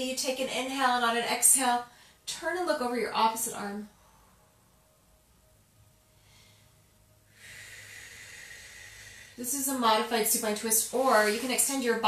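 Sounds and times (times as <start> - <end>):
person exhaling: 7.3 - 9.4.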